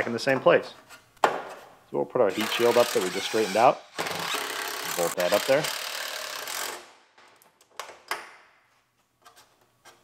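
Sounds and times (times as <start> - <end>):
impact wrench running bolt: 4.0 - 6.9.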